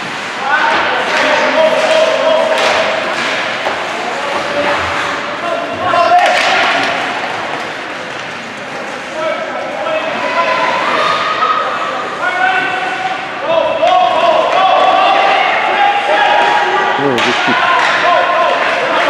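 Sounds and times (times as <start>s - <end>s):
high voices calling out: 17.0s - 17.6s.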